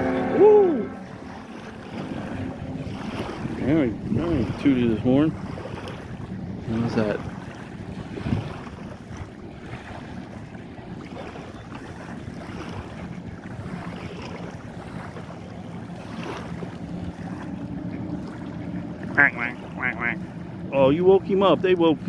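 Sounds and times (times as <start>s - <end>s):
wind on microphone: 0.0s - 19.2s
boat engine hum: 0.0s - 22.0s
small waves splashing: 0.0s - 22.0s.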